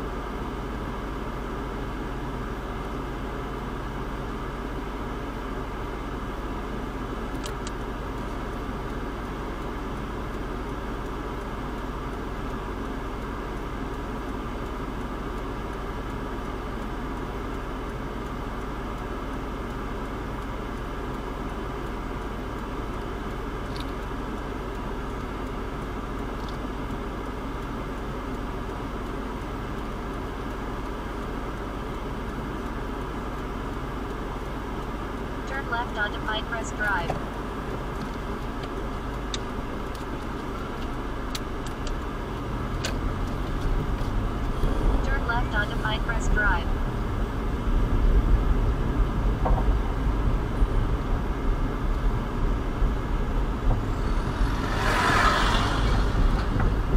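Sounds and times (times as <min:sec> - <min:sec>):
car engine idling: 0:00.0 - 0:56.9.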